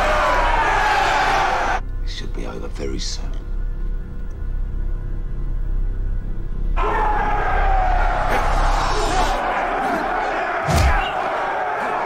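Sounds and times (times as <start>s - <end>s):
crowd of men shouting: 0.0s - 1.8s, 6.8s - 12.0s
tense film score: 0.0s - 12.0s
low steady drone: 1.8s - 6.8s
heavy thud: 10.6s - 11.2s.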